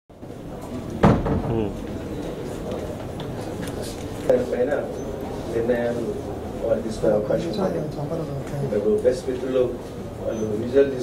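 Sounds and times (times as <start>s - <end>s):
sudden knock: 1.0s - 1.7s.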